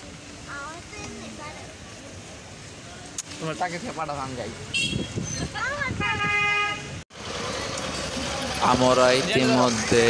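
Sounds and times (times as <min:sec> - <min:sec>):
low road noise: 0:00.0 - 0:10.0
vehicle horn: 0:04.7 - 0:05.2, 0:06.0 - 0:07.0.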